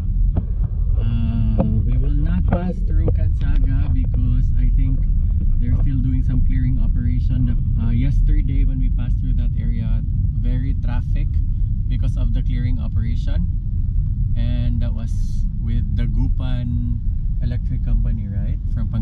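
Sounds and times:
car engine and road rumble: 0:00.0 - 0:19.0
voices talking: 0:01.0 - 0:05.0.

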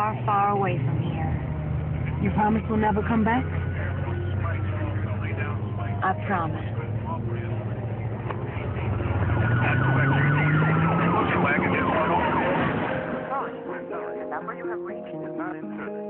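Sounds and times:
car engine revving: 0:00.0 - 0:14.5
music: 0:00.0 - 0:16.0
siren wailing: 0:01.4 - 0:06.8, 0:08.5 - 0:14.3.

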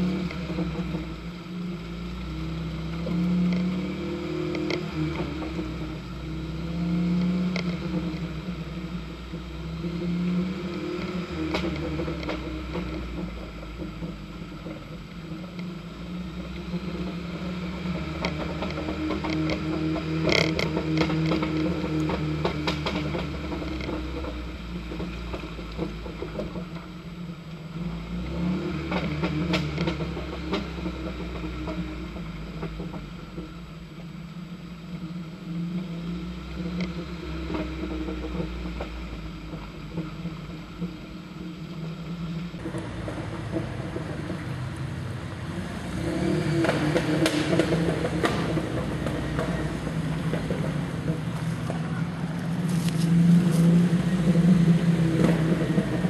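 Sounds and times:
off-road vehicle engine labouring: 0:00.0 - 0:56.0
vehicle body rattling over ruts: 0:00.0 - 0:56.0.

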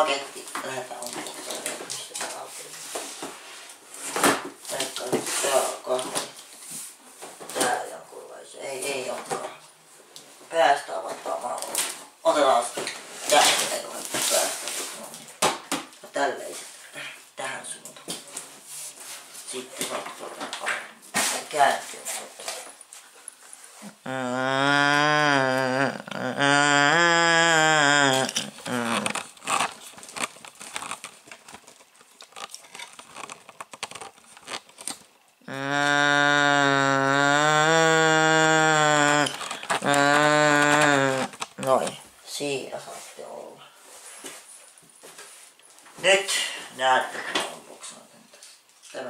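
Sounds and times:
person holding low vocal notes: 0:23.9 - 0:29.2, 0:35.5 - 0:42.0.

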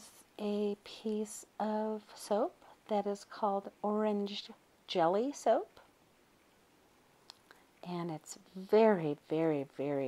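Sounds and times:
woman speaking: 0:00.0 - 0:05.9, 0:07.8 - 0:10.0
faint clicks: 0:07.2 - 0:07.6.

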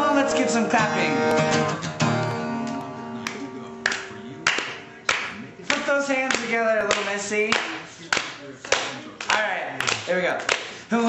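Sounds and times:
acoustic guitar chord: 0:00.0 - 0:05.1
slow hand claps: 0:02.6 - 0:10.8.

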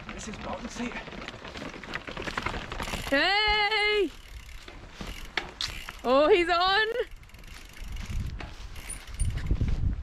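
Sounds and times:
bike freewheel ratchet clicking: 0:02.1 - 0:09.7.

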